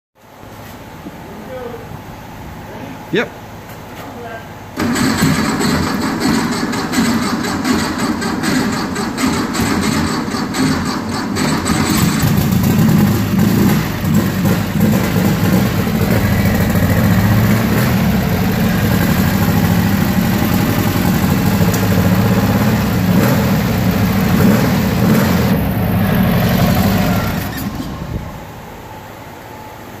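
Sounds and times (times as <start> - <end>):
car engine starting and running: 4.8 - 28.8.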